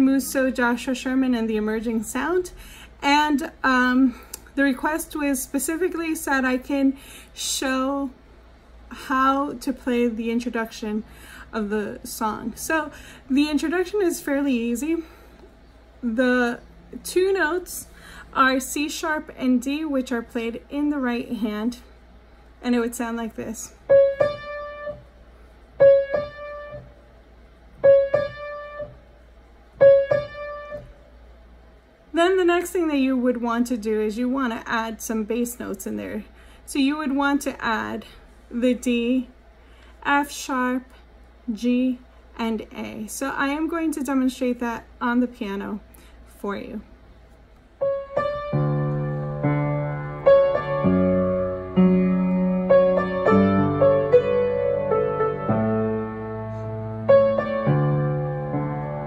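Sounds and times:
slow upright piano: 23.8 - 25.2, 25.8 - 27.0, 27.7 - 29.1, 29.7 - 31.0, 47.8 - 59.0
piano playing two-note figure: 23.9 - 25.1, 25.8 - 27.0, 27.8 - 29.0, 29.8 - 31.0.

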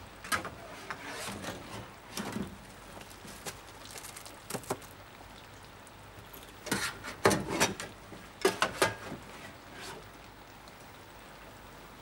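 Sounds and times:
rain falling: 0.0 - 12.0.

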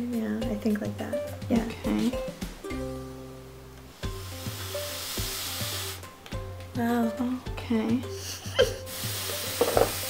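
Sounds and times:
background music with plucked notes: 0.0 - 10.0
airy hiss of blow pen: 3.9 - 6.2, 8.2 - 10.0.

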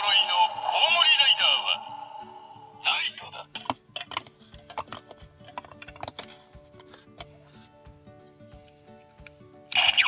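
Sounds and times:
faint background music: 0.0 - 10.0
plastic toys clicking on stands: 3.6 - 6.3.

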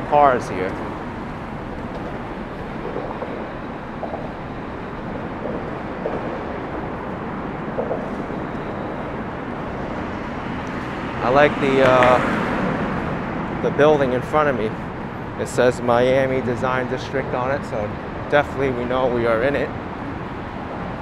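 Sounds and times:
highway traffic rumble: 0.0 - 21.0.

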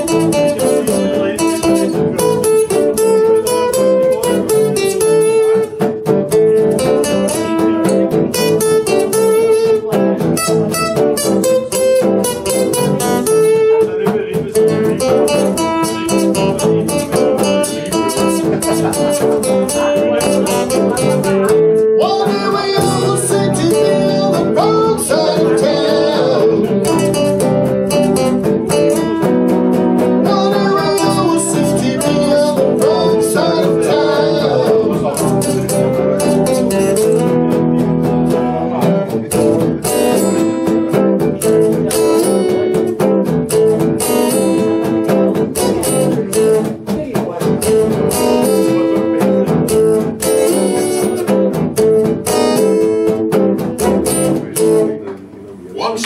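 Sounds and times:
electric and acoustic guitars: 0.0 - 56.0.

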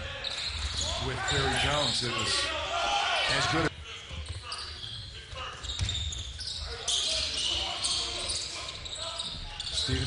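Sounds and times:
faint voices in echoing hall: 0.0 - 10.0
sneakers squeaking: 4.1 - 10.0.

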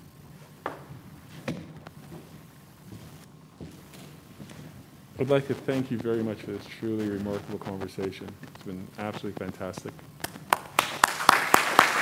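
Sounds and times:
footsteps on hard stage floor: 0.0 - 10.8.

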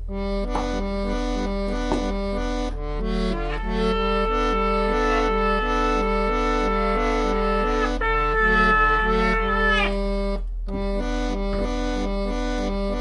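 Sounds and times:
toy electronic keyboard music: 0.3 - 10.1.

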